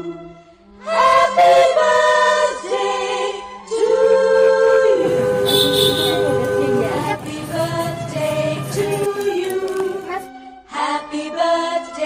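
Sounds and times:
music with singing voices: 0.0 - 12.0.

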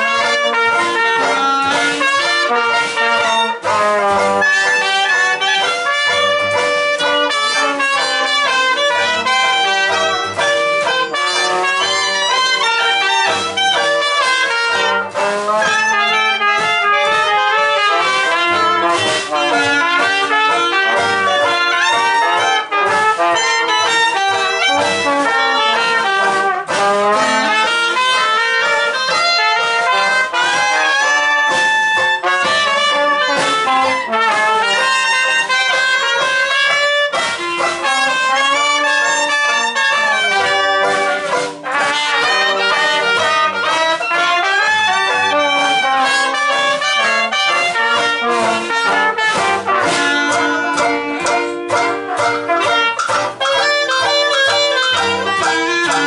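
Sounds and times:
jazz band playing: 0.0 - 56.0.

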